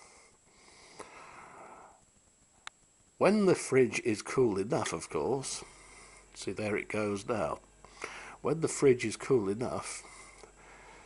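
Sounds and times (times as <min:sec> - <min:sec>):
soft breath out: 0:00.0 - 0:02.0, 0:07.8 - 0:08.4, 0:10.0 - 0:11.0.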